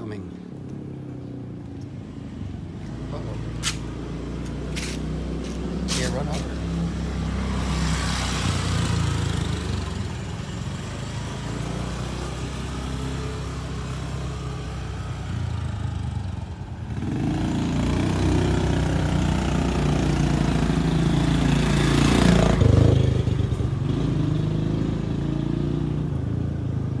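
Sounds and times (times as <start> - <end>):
motor scooter engines buzzing: 0.5 - 27.0.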